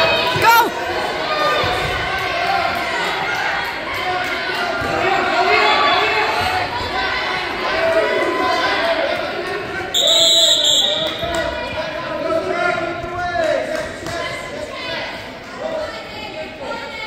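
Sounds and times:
people shouting in echoing gym: 0.0s - 17.0s
referee's whistle blast: 9.9s - 11.2s.

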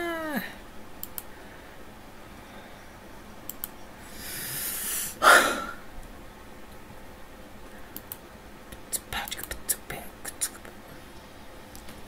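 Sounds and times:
man whispering: 8.9s - 10.8s.

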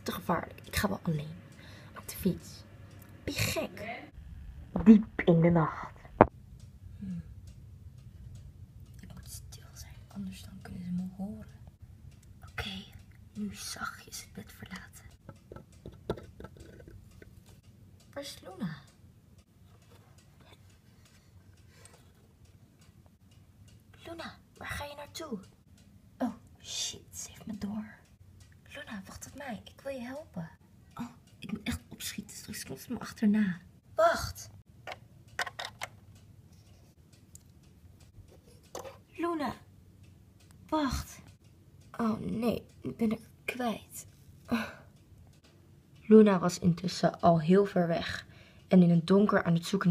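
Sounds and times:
faint room noise: 0.0s - 49.9s
plastic toy figures clicking: 14.6s - 17.6s, 34.8s - 36.3s.

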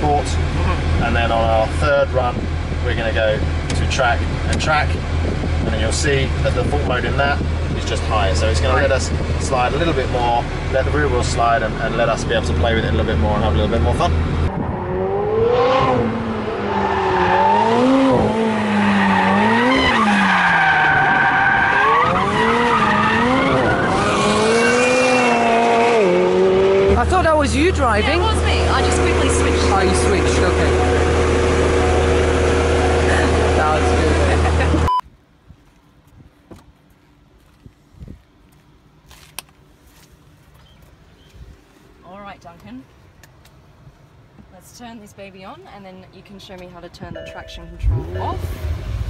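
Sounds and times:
car engine revving: 0.0s - 34.9s, 47.7s - 49.0s.

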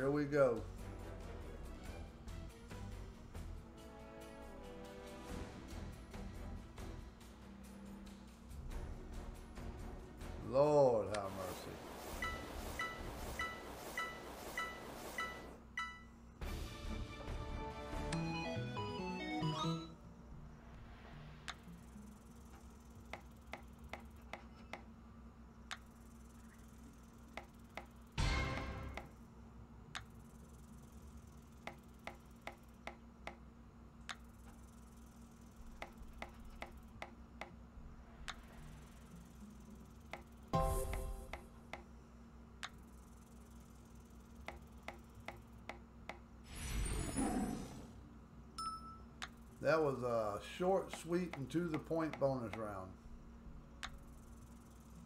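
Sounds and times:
low steady background tone: 0.0s - 55.0s.

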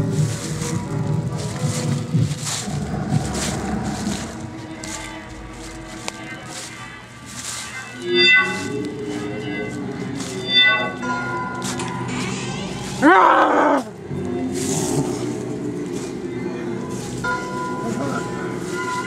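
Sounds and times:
spooky droning tones: 0.0s - 19.0s
wavering cry: 12.9s - 14.0s.

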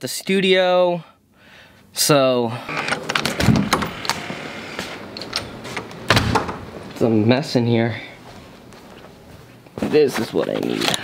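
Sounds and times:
door lock clicks and rattles: 2.7s - 7.0s
door thumps: 2.9s - 7.1s.

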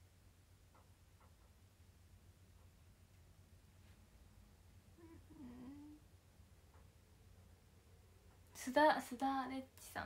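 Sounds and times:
woman humming faintly: 4.9s - 6.1s.

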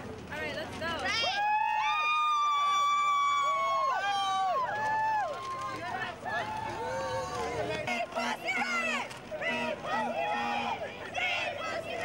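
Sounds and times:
protesters shouting a chant: 5.8s - 12.0s.

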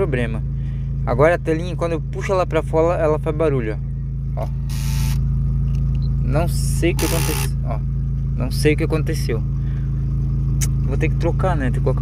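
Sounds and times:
car engine idling hum: 0.0s - 12.0s
car screen mechanical noise: 4.6s - 6.2s, 6.9s - 7.6s.

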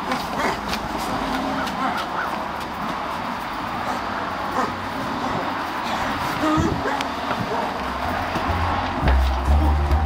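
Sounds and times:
cars passing on street: 0.0s - 10.0s.

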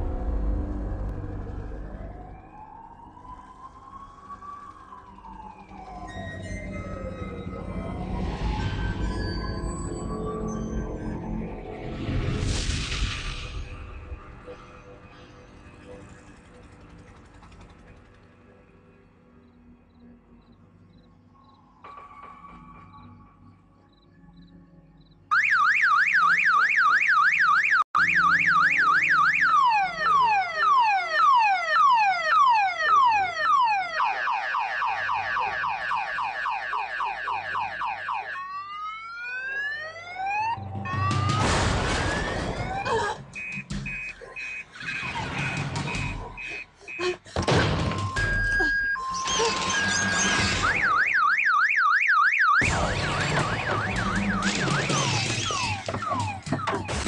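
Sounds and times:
electronic alarm siren: 1.1s - 12.0s, 20.0s - 57.0s.

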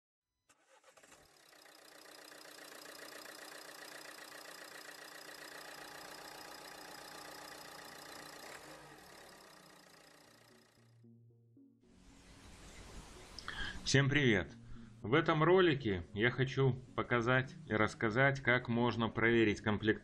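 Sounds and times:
car engine starting and running: 0.5s - 11.0s.

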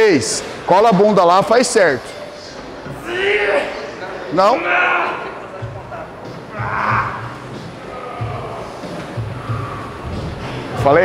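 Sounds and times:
background music with pulsing beat: 5.6s - 11.0s.

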